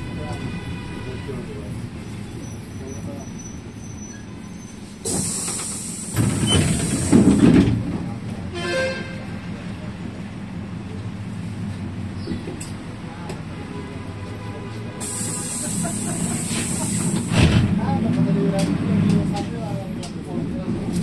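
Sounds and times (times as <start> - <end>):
vehicle engine and road noise: 0.0 - 21.0.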